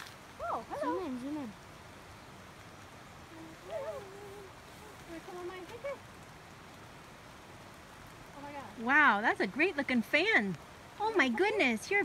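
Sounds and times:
light rain on foliage: 0:00.0 - 0:12.0
woman speaking: 0:00.4 - 0:01.6, 0:08.4 - 0:12.0.

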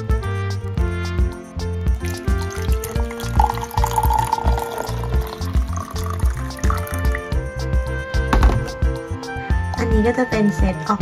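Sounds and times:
background music with steady beat: 0:00.0 - 0:11.0
water pouring into baby bottle: 0:01.8 - 0:07.4.

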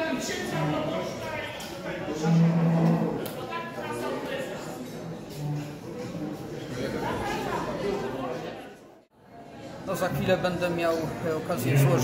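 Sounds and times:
voices in a large room: 0:00.0 - 0:12.0.

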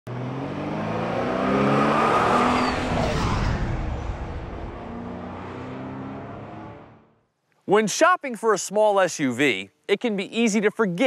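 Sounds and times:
car engine revving: 0:00.1 - 0:07.2
rush of passing noise: 0:00.2 - 0:07.1.

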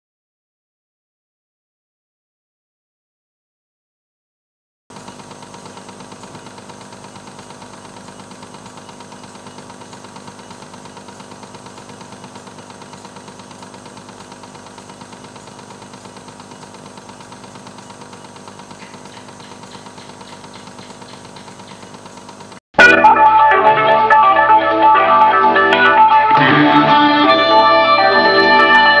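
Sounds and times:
cassette deck whirring: 0:04.9 - 0:29.0.

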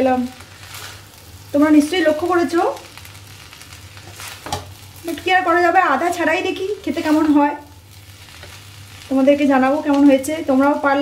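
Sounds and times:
woman's voice: 0:00.0 - 0:00.4, 0:01.6 - 0:02.8, 0:05.0 - 0:07.7, 0:09.1 - 0:11.0
faint sizzle: 0:00.0 - 0:11.0
spatula scraping wok: 0:00.4 - 0:01.2, 0:03.3 - 0:05.3, 0:06.8 - 0:09.1.

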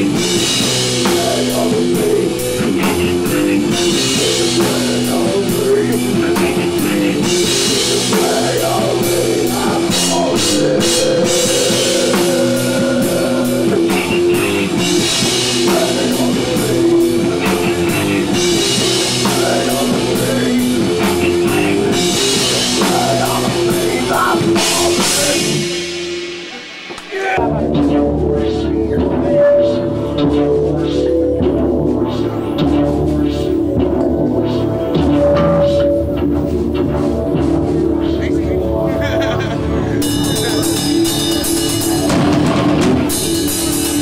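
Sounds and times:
drum kit with cymbals: 0:00.0 - 0:38.5, 0:39.2 - 0:44.0
bass guitar: 0:00.0 - 0:44.0
keyboards: 0:00.0 - 0:44.0.

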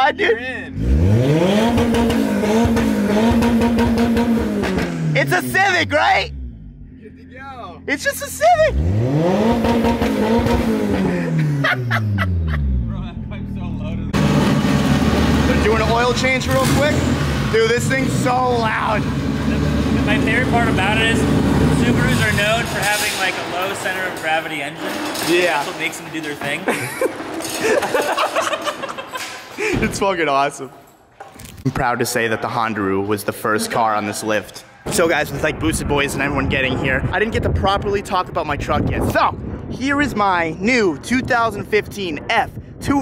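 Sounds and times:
car engine revving: 0:00.7 - 0:25.8
people laughing: 0:11.4 - 0:13.4, 0:26.4 - 0:30.0
voices: 0:15.4 - 0:27.0.

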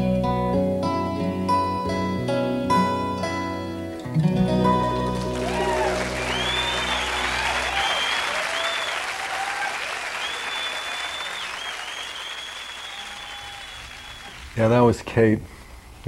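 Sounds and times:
acoustic guitar and mandolin chord: 0:00.0 - 0:07.8
audience applause: 0:04.8 - 0:14.8
whistles and cheers: 0:05.2 - 0:14.5.

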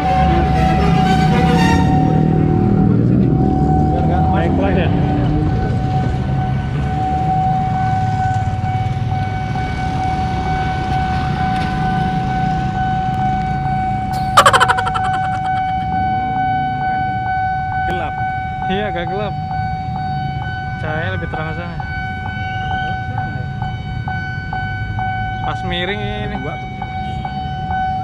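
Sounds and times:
idling motorcycles and cars: 0:02.1 - 0:13.5
level crossing alarm tone: 0:14.2 - 0:15.8.

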